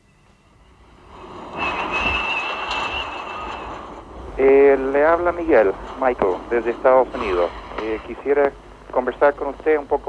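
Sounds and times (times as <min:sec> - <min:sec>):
jet engine roar with whine: 0:00.5 - 0:10.0.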